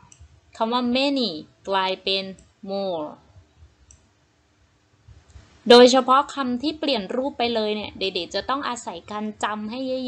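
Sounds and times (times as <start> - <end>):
woman speaking: 0.6 - 3.3, 5.6 - 10.0.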